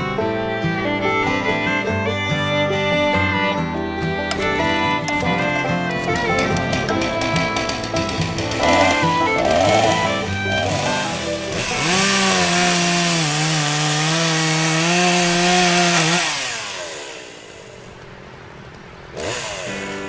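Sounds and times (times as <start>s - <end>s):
music: 0.0s - 16.4s, 19.2s - 20.0s
chainsaw engine revving: 4.3s - 18.0s, 19.1s - 20.0s.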